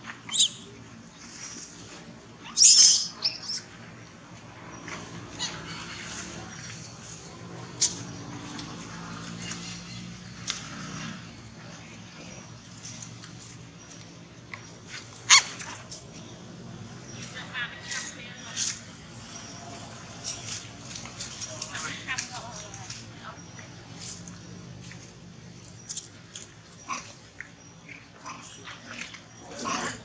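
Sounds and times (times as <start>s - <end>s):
monkeys squealing: 0.3s - 0.6s, 2.4s - 3.7s, 5.4s - 6.6s.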